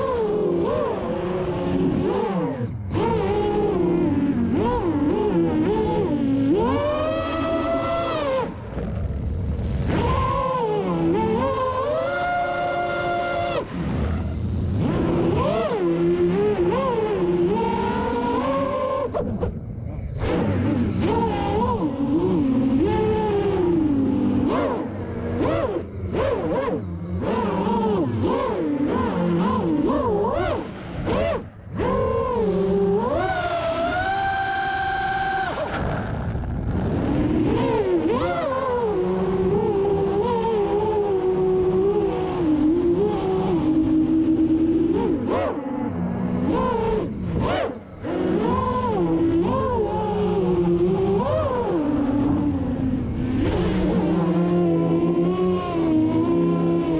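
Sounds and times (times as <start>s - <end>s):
quadcopter motors whining: 0.0s - 56.9s.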